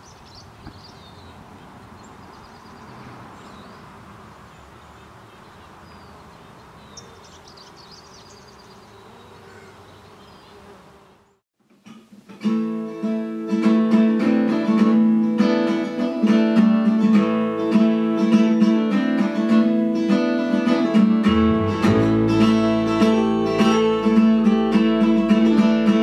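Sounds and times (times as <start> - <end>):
insects buzzing: 6.4 - 11.4
acoustic guitar plucking: 11.7 - 26.0.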